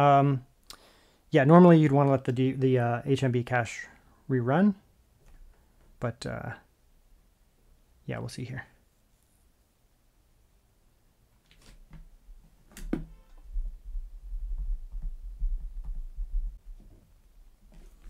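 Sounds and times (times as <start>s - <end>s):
low rumble: 13.4s - 16.7s.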